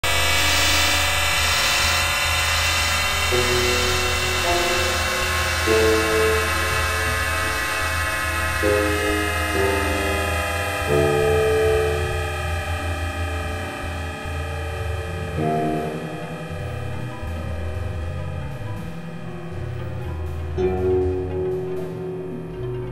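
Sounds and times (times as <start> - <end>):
synthesizer drone with chords: 0.0 - 22.9.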